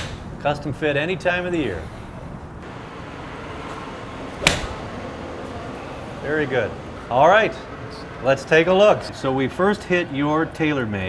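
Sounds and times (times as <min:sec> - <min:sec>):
golf club striking ball: 0:00.0 - 0:00.4, 0:03.7 - 0:05.0.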